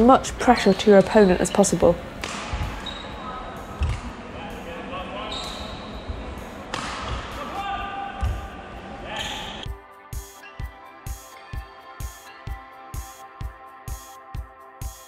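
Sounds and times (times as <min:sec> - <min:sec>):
music: 0:00.0 - 0:15.0
racket striking shuttlecock: 0:02.2 - 0:02.8, 0:06.6 - 0:07.4
shoe squeaks on court floor: 0:02.2 - 0:04.0, 0:05.2 - 0:06.2, 0:09.2 - 0:09.7.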